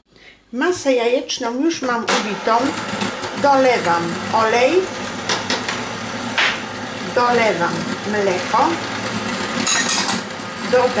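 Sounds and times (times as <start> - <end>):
electric mixer running: 2.0 - 11.0
glass bowls scraping on counter: 9.4 - 10.2.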